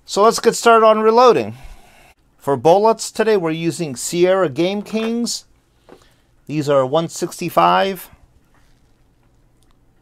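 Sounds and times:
faint room hum: 0.0 - 10.0
faint small clicks: 8.5 - 10.0.

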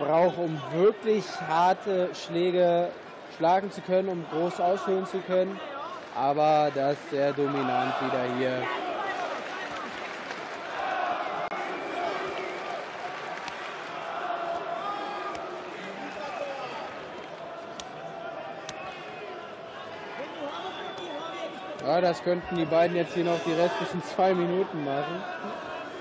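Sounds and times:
crowd shouting and chatter: 0.0 - 26.0.

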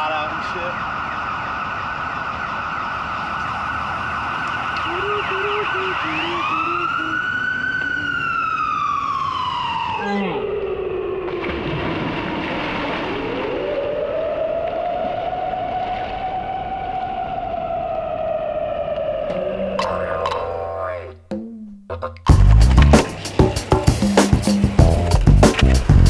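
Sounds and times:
siren wailing: 0.0 - 12.2, 12.9 - 21.2.

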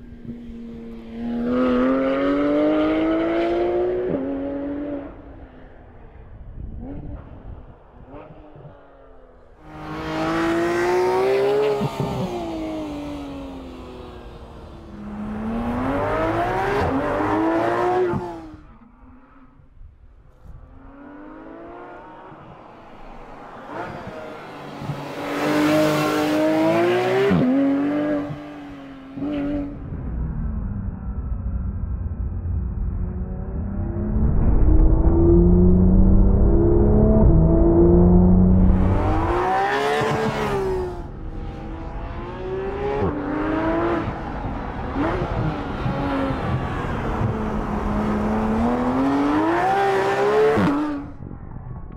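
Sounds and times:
car engine revving: 6.6 - 18.7, 20.8 - 51.2
deep low rumble: 29.7 - 39.6.

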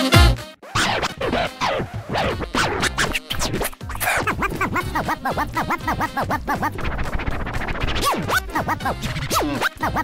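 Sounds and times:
music: 0.0 - 10.0
turntable scratching: 0.6 - 10.0.

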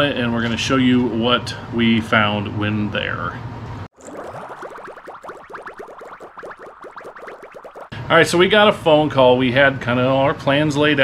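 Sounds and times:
rising synthesized chirps: 4.0 - 7.9.

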